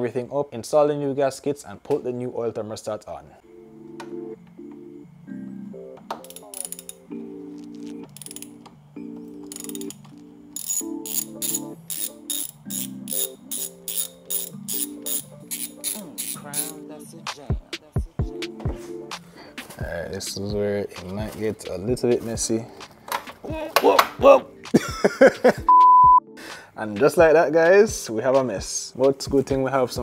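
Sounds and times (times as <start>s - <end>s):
background music: 3.4s - 30.0s
ratchet wrench clicking: 6.2s - 7.1s, 8.1s - 8.6s, 9.5s - 10.0s, 10.6s - 16.8s.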